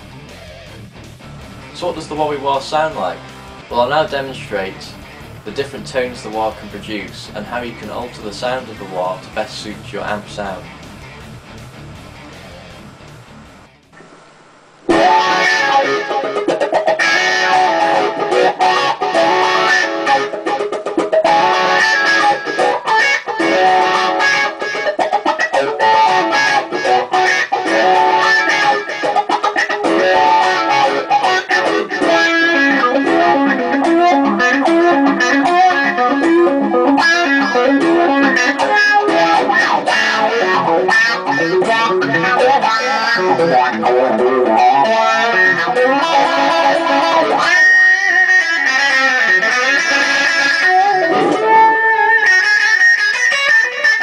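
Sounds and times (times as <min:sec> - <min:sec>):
overdriven electric guitar with wah: 0:00.0 - 0:54.0.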